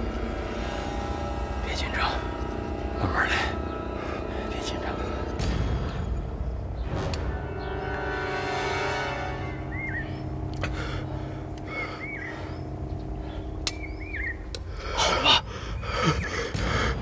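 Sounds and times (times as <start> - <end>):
low drone notes: 0.0 - 17.0
heavy breaths: 10.5 - 13.6, 14.5 - 17.0.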